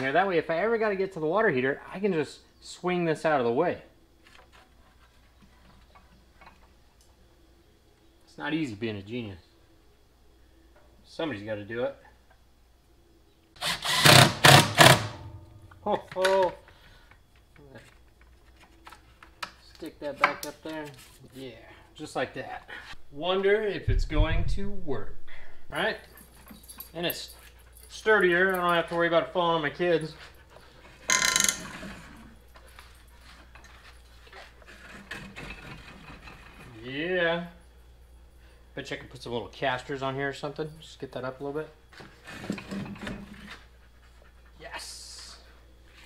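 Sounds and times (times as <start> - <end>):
cordless drill driving a screw: 13.6 - 15.1.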